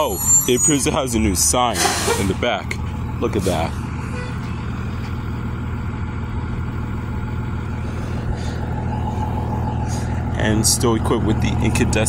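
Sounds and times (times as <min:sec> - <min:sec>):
diesel bus engine idling: 0:00.0 - 0:12.0.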